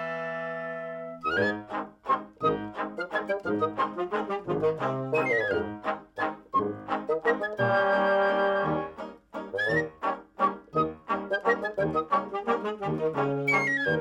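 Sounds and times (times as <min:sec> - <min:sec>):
dance band with brass and reeds: 0:01.3 - 0:14.0.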